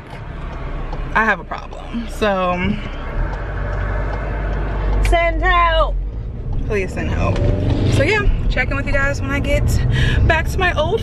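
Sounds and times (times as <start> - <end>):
car engine rumble inside cabin: 0.0 - 11.0.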